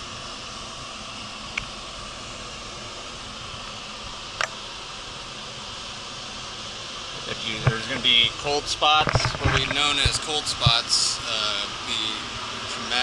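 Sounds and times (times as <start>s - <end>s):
fans blowing hot air: 0.0s - 13.0s.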